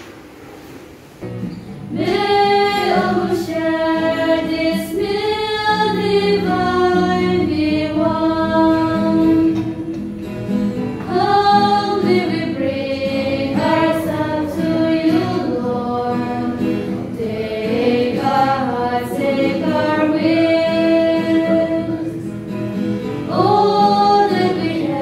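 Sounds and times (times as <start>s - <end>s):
choir singing a hymn: 1.9s - 10.0s, 11.0s - 22.3s, 22.9s - 25.0s.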